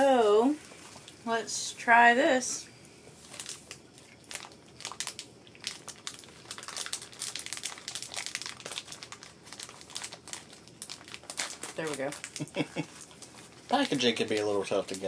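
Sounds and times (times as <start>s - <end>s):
wrapper crinkling and crackling: 3.2s - 15.0s.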